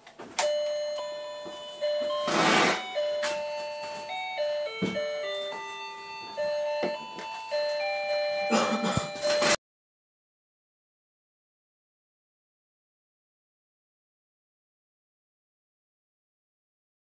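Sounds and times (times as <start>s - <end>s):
electronic toy beeping melody: 0.4s - 9.6s.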